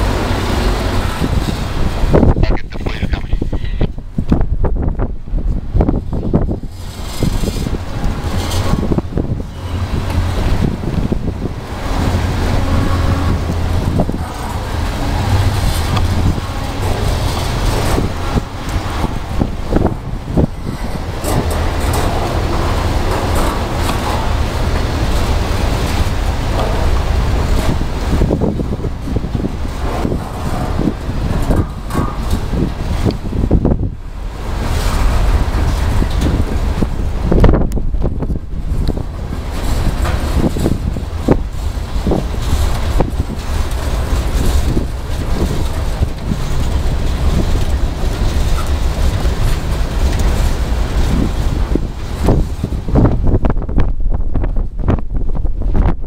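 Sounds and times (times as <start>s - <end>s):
freight cars rattling: 0.0s - 4.0s, 5.6s - 53.7s
freight train wheels on rails: 0.0s - 55.9s
wind buffeting microphone: 0.0s - 56.0s.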